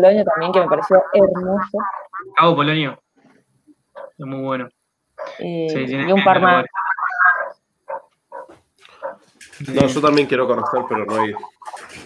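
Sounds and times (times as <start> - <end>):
voices over a video call: 0.0 - 7.4, 8.9 - 12.0.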